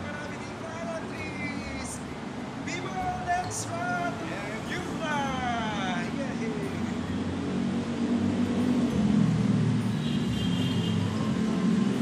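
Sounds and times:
car engines passing: 0:00.0 - 0:12.0.

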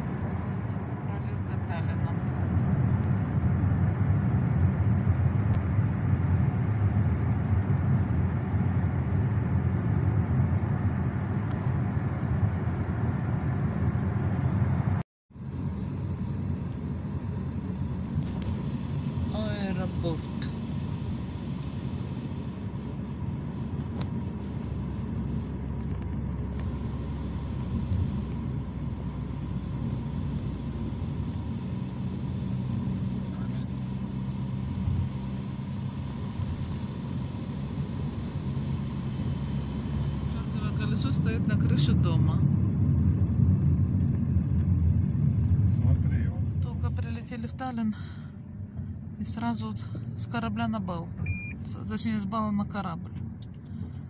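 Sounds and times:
road and engine rumble in car: 0:00.0 - 0:54.0.

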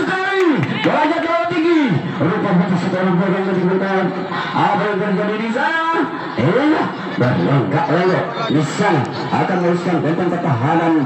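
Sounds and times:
man calling out: 0:04.6 - 0:11.0.

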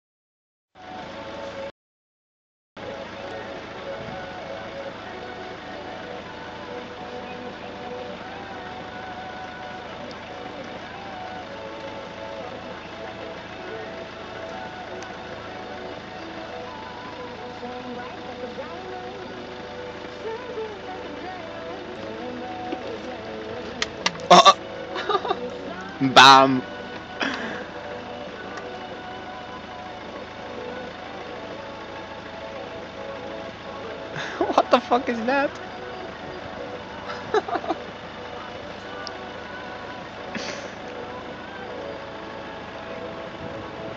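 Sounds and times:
steady low hum: 0:02.8 - 0:43.9
person laughing: 0:24.3 - 0:25.5, 0:27.2 - 0:27.7, 0:34.2 - 0:34.9, 0:37.0 - 0:37.9, 0:40.3 - 0:40.8.

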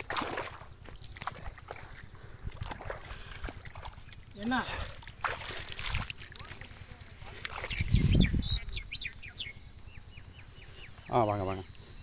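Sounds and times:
birds chirping: 0:06.3 - 0:12.0.

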